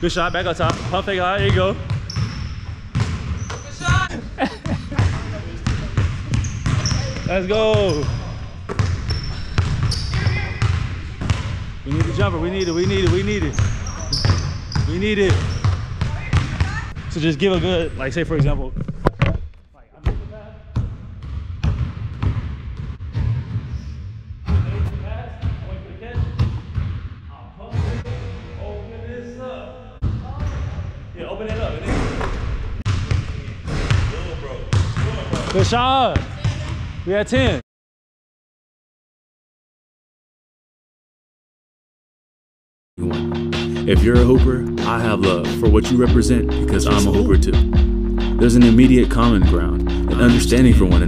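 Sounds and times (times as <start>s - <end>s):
sneakers squeaking on court: 0.2s - 4.1s, 5.0s - 17.1s
basketball bouncing on hardwood floor: 2.9s - 4.0s, 5.0s - 8.0s, 8.7s - 16.8s, 20.8s - 23.5s.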